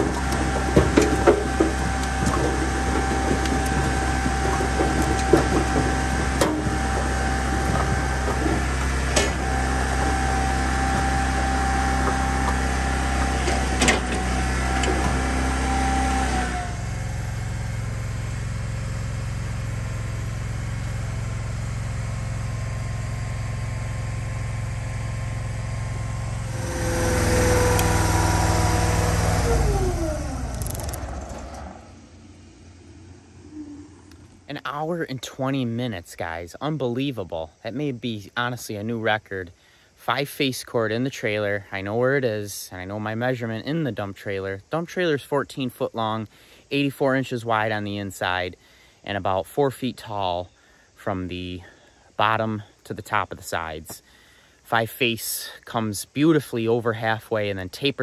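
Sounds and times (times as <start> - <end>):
split wood knocking on conveyor: 0.0 - 11.2
firewood processor engine running: 0.0 - 32.8.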